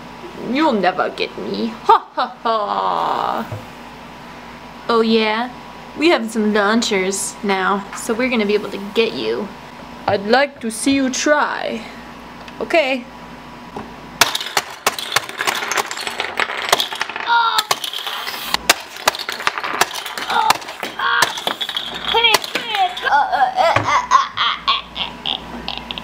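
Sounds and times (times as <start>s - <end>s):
toy cars clicking and clattering: 14.2s - 23.6s
playful voice noises: 22.0s - 26.0s
laughter: 23.6s - 26.0s.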